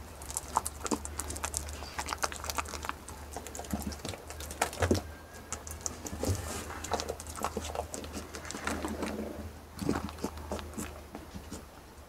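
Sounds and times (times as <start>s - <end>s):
goat chewing wetly: 0.0s - 12.0s
low steady hum: 0.0s - 12.0s.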